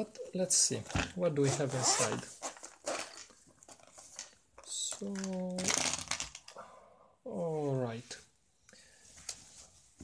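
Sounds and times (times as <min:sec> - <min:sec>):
fabric rubbing and scratching: 0:01.4 - 0:03.2.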